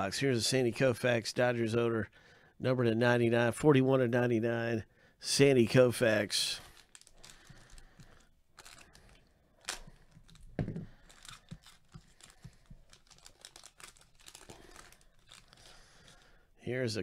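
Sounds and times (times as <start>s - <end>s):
plastic wrapper crinkling and tearing: 6.5s - 16.4s.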